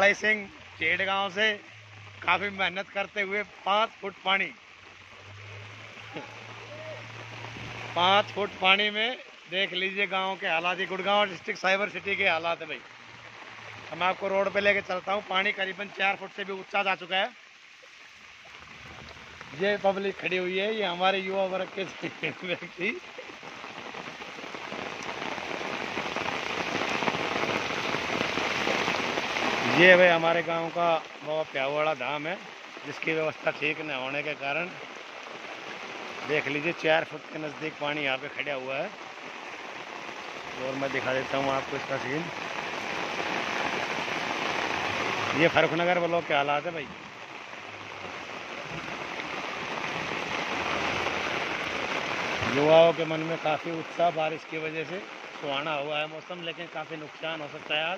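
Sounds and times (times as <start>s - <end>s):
heavy rain on floodwater: 0.0s - 57.9s.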